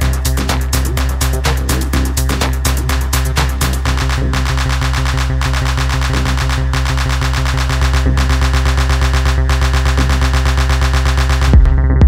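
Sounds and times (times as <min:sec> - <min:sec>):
tech house music: 0:00.0 - 0:12.0.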